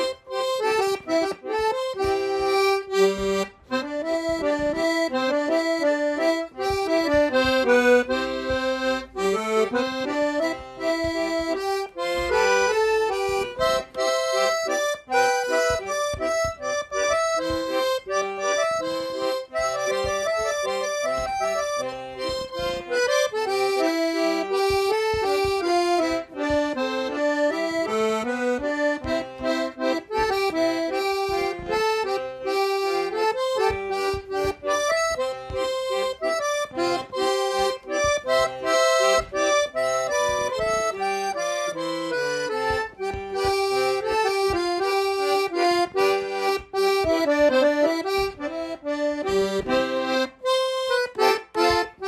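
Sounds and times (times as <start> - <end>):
solo accordion tune: 0.0 - 52.0.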